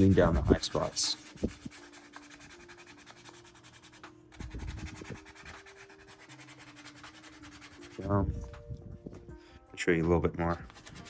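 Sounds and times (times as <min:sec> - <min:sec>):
sandpaper rubbing on plastic: 0:00.0 - 0:08.1, 0:10.6 - 0:11.0.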